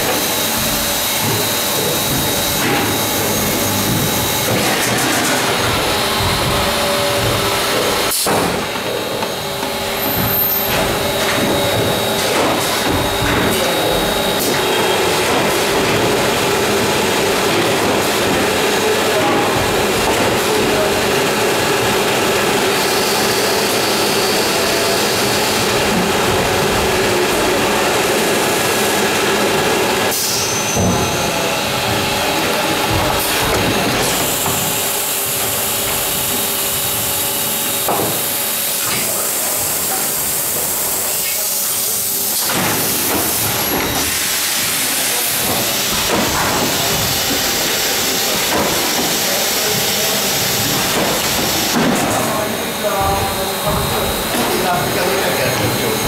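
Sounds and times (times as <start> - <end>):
steady hum: 0.0 - 23.5
vacuum-forming machine running: 0.0 - 56.0.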